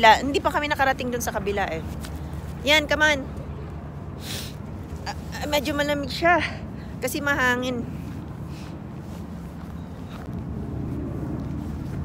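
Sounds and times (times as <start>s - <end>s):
footsteps on paved path: 0.0s - 3.9s, 4.7s - 12.0s
wind buffeting microphone: 7.0s - 12.0s.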